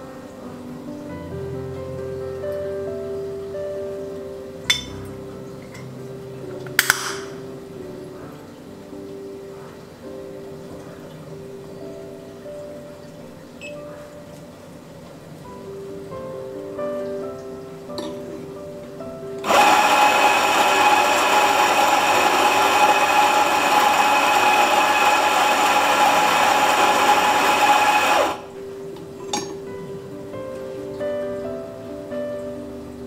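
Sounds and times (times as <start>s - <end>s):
coffee grinder grinding beans: 19.4s - 28.5s.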